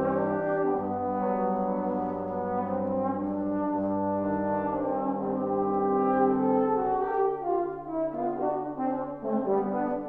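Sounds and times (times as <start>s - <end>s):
trombones playing chords: 0.0s - 10.0s.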